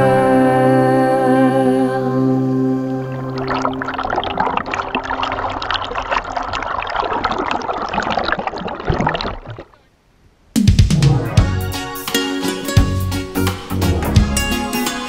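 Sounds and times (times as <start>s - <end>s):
creek water rushing and splashing: 3.2s - 9.9s
song with held notes: 11.4s - 15.0s.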